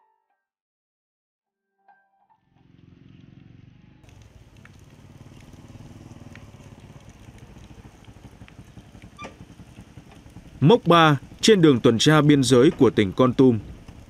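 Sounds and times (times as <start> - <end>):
small motorcycle engine running: 2.6 - 14.0.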